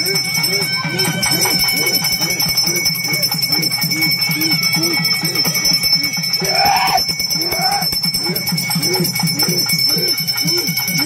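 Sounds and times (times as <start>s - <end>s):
bell ringing: 0.0s - 11.0s.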